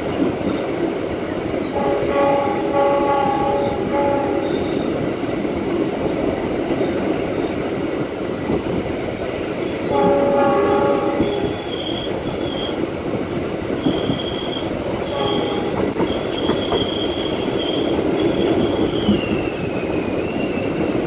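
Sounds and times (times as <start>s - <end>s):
train wheels rumbling on rail: 0.0s - 21.0s
locomotive horn: 1.8s - 4.8s, 9.9s - 11.6s, 15.1s - 16.0s
high wheel squeal: 11.2s - 12.8s, 13.8s - 20.8s.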